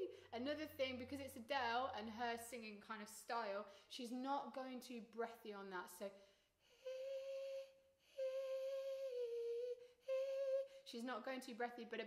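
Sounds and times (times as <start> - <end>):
woman singing high notes: 6.8 - 10.9.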